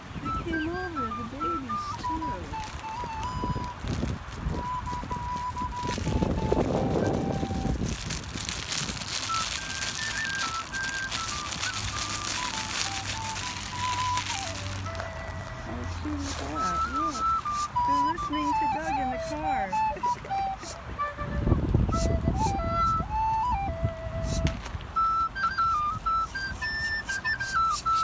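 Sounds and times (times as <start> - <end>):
recorder playing a slow tune: 0.0 - 28.0
rustling noise: 0.8 - 28.0.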